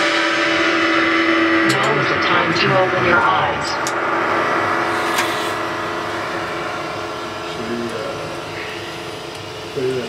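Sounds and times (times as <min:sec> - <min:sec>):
cymbals ringing: 0:00.0 - 0:10.0
electric guitar chord ringing: 0:00.0 - 0:10.0.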